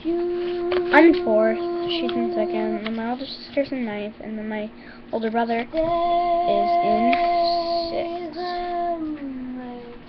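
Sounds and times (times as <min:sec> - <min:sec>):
girl singing a long note: 0:00.0 - 0:03.5, 0:05.6 - 0:10.0.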